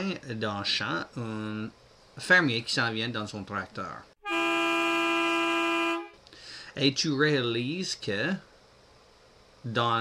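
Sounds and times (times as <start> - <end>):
vehicle horn blast: 4.2 - 6.2.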